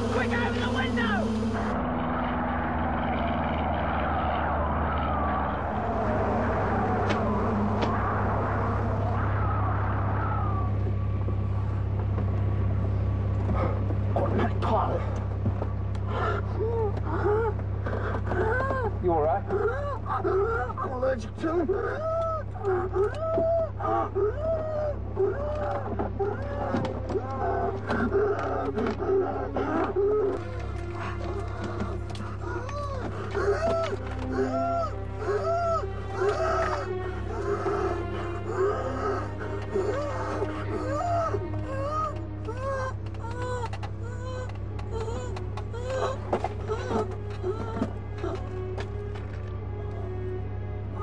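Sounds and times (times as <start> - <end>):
vehicle engine drone: 0.0 - 51.0
animal cries: 16.1 - 48.9
background music: 16.5 - 51.0.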